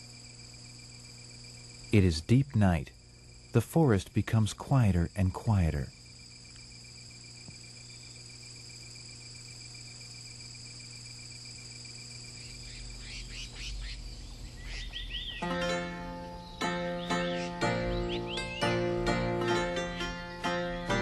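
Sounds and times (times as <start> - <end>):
crickets trilling: 0.0 - 21.0
bird chirps: 12.4 - 21.0
plucked string music: 15.4 - 21.0.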